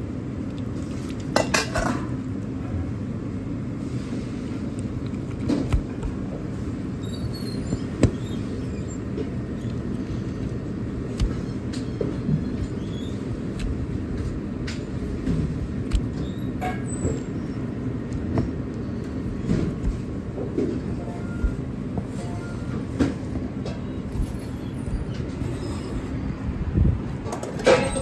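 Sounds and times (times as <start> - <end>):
low kitchen rumble: 0.0 - 28.0.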